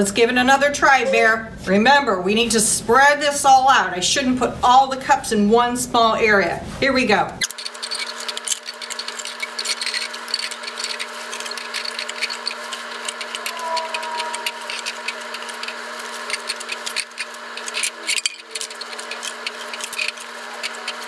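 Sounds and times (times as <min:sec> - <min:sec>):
plastic cups clicking: 0:07.5 - 0:21.0.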